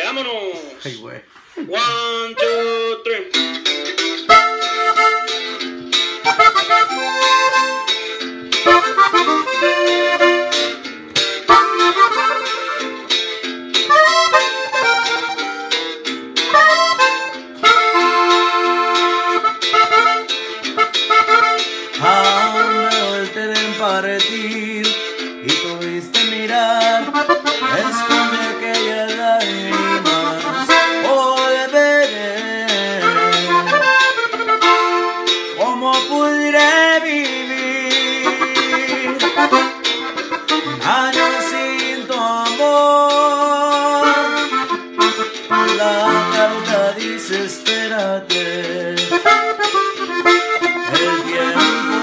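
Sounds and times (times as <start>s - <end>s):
button accordion melody: 1.6s - 13.2s, 13.8s - 23.8s, 26.6s - 35.8s, 36.7s - 47.6s, 49.0s - 52.0s.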